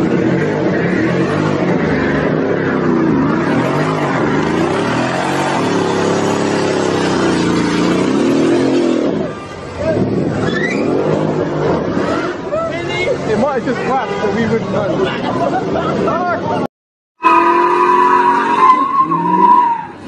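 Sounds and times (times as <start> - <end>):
car engine revving hard: 0.0 - 9.3
voices: 9.1 - 16.7.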